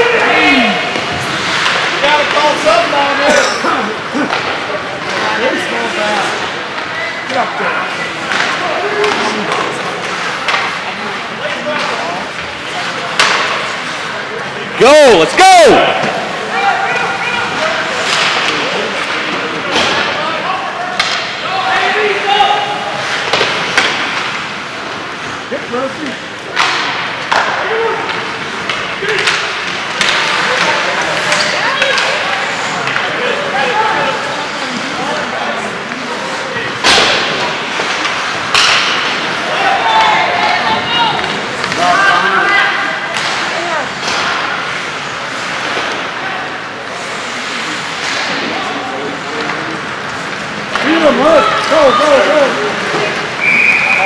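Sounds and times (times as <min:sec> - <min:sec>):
hubbub of spectators' voices: 0:00.0 - 0:54.0
puck and sticks knocking boards: 0:04.2 - 0:05.6, 0:08.2 - 0:11.0, 0:11.7 - 0:13.7, 0:18.0 - 0:20.2, 0:20.9 - 0:21.9, 0:23.0 - 0:24.5, 0:26.5 - 0:33.2, 0:36.8 - 0:46.2, 0:47.9 - 0:48.5, 0:49.3 - 0:53.7.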